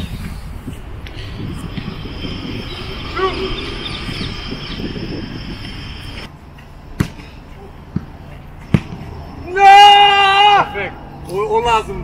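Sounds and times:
loud drawn-out shout: 3.0s - 4.1s, 9.4s - 11.0s.

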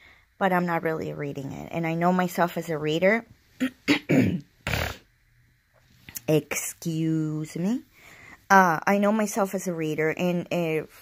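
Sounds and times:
woman clearing her throat: 3.6s - 5.0s.

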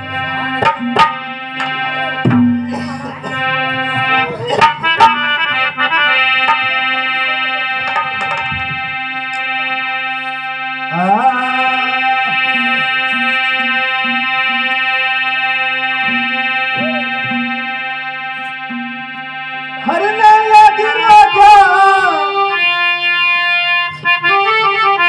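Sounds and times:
harmonium music: 0.0s - 25.0s.

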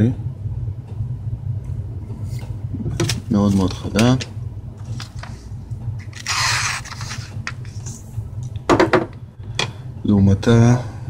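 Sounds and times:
steady low hum: 0.0s - 11.0s
paper rustling: 4.8s - 8.0s.

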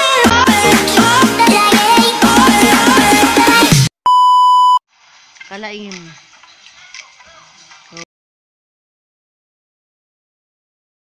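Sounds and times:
test-tone beep: 4.1s - 4.8s.

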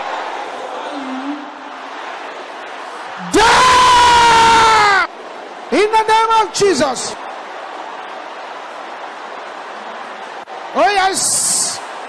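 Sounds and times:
crowd shouting a prayer: 0.0s - 12.0s
loud held yell: 3.1s - 5.2s.

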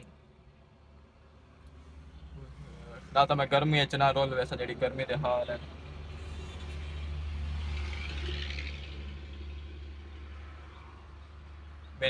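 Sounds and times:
motor vehicle rumble: 0.0s - 12.0s.

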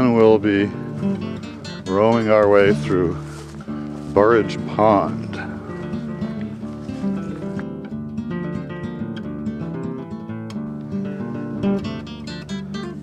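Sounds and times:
acoustic guitar plucking: 0.0s - 13.0s.

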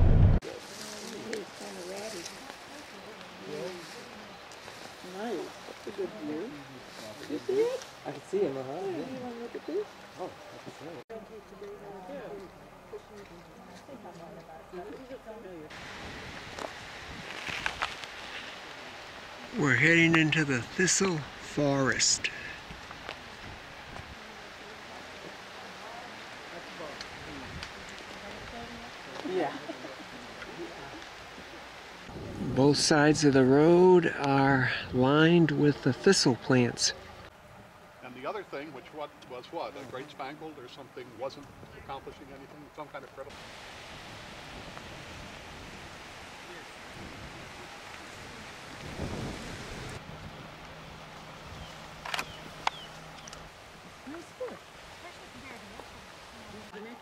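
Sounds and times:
steady hiss: 15.7s - 37.3s, 42.8s - 56.9s
sharp clicks: 52.0s - 53.4s.

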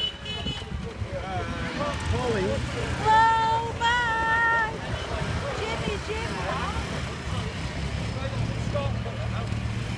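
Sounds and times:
people talking and calling: 0.0s - 9.9s
vehicle engines idling: 0.0s - 9.9s.

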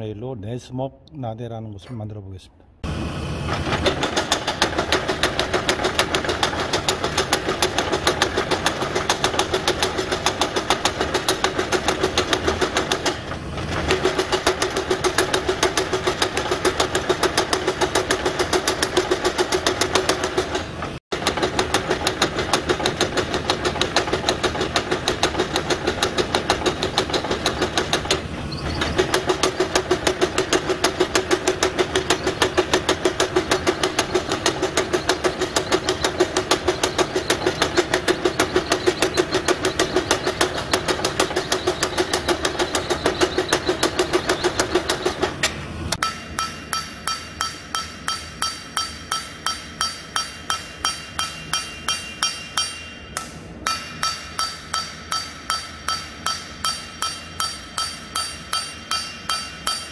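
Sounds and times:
power hammer pounding hot steel: 2.8s - 59.9s
steady machine hum: 2.8s - 59.9s.

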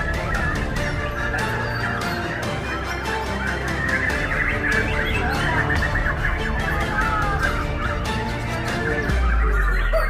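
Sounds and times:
birds warbling chorus: 0.0s - 10.0s.

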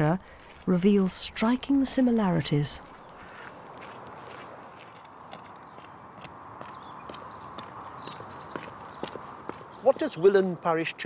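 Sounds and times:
outdoor background hiss: 0.0s - 5.3s
footsteps on gravel: 2.8s - 10.0s.

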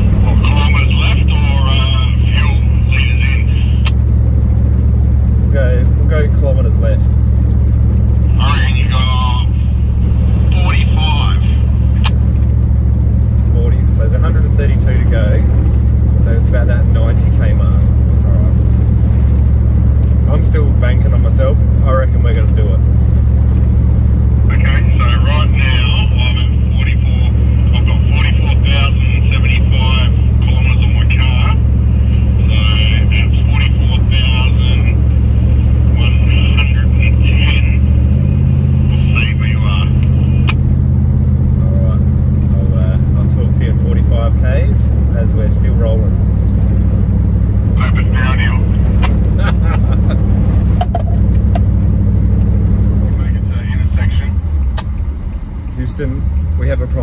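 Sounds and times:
car engine droning in cabin: 0.0s - 57.0s.

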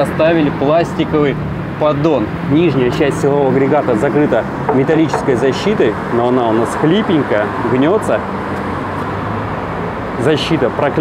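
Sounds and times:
low vehicle hum: 1.5s - 7.7s.

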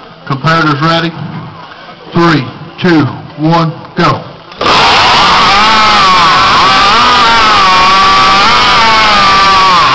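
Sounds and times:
chainsaws cutting logs: 4.6s - 9.9s.

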